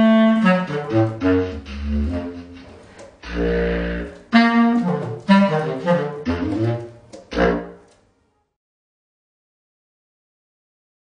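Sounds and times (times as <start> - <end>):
bass clarinet jazz phrase: 0.0 - 7.9.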